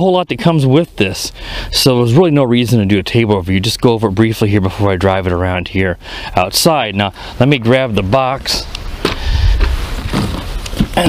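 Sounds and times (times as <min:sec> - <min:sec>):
low rumble: 0:08.0 - 0:11.0
cardboard box handling rustle: 0:09.0 - 0:11.0.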